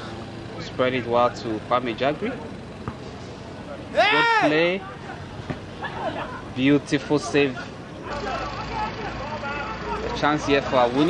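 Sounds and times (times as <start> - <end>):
distant voices calling out: 0.0 - 11.0.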